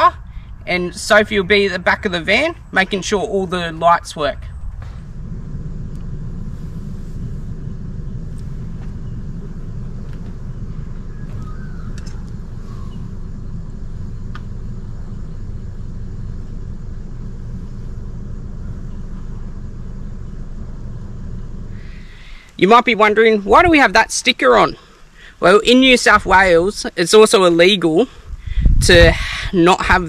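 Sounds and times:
diesel engine idling: 0.0s - 26.7s.

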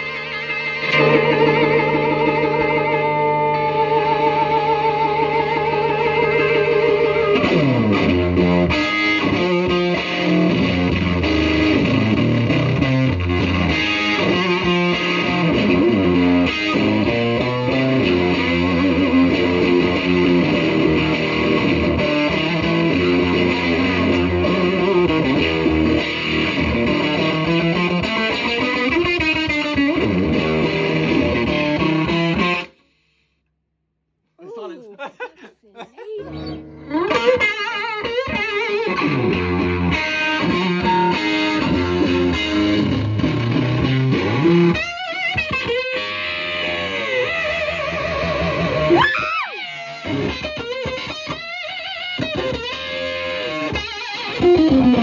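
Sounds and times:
distorted electric guitar: 0.0s - 32.8s, 36.2s - 55.0s.

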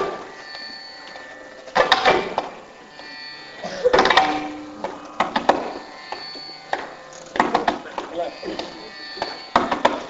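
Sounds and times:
sharp percussion strokes: 0.0s - 10.0s
sustained drone tones: 0.0s - 10.0s.

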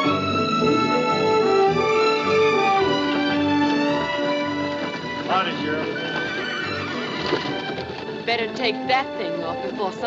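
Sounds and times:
film score music: 0.0s - 10.0s
hooves clopping on dirt: 0.9s - 10.0s.

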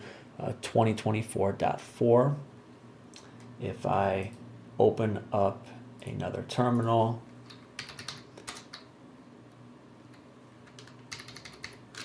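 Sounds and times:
computer keyboard typing: 7.5s - 8.9s, 10.6s - 12.0s.

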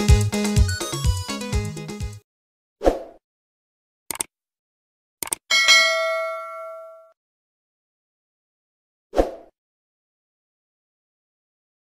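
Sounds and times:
mouse clicks: 5.2s - 5.4s
notification bell ding: 5.5s - 7.1s.

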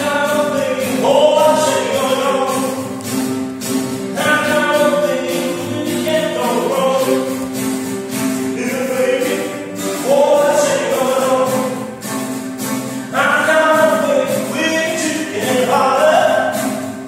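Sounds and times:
person singing: 0.0s - 3.1s, 4.1s - 7.6s, 8.2s - 17.0s
acoustic guitars: 0.0s - 17.0s.

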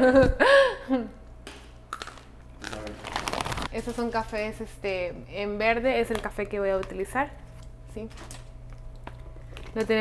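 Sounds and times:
person crunching hard snack: 1.9s - 3.7s.

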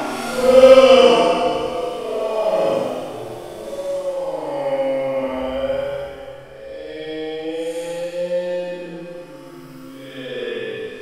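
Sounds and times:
slow chant-like music: 0.0s - 11.0s.

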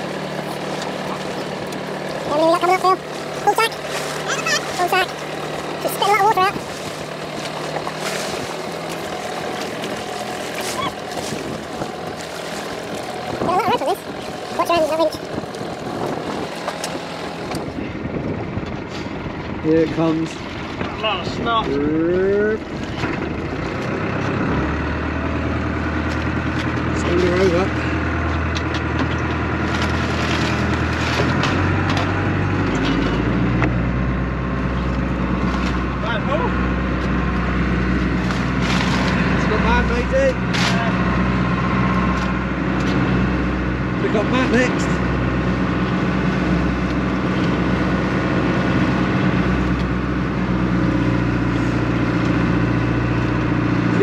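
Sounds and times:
boat engine running: 0.0s - 54.0s.

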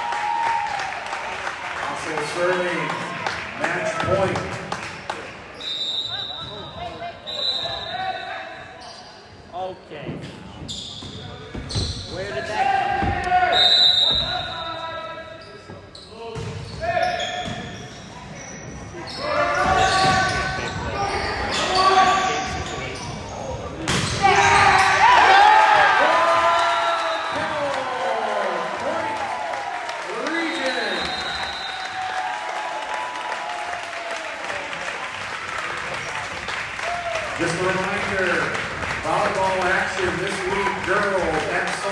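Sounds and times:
crowd shouting and cheering: 0.0s - 8.7s, 12.2s - 15.2s, 24.0s - 41.9s
sneaker squeaks: 5.5s - 25.0s
players calling: 30.0s - 33.1s.

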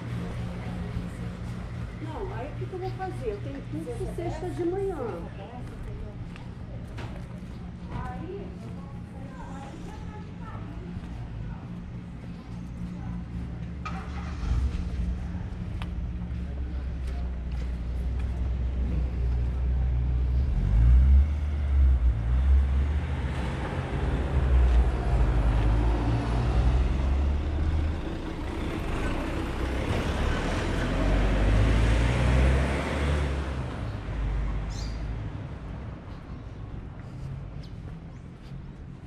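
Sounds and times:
tyre and road noise: 0.0s - 39.0s
vehicles driving past: 0.0s - 39.0s.

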